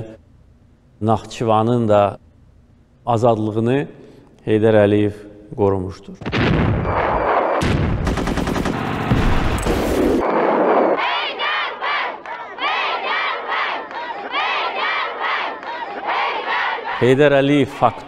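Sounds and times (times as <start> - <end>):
rapid automatic gunfire: 8.0 - 10.3
crowd shouting and cheering: 10.2 - 18.0.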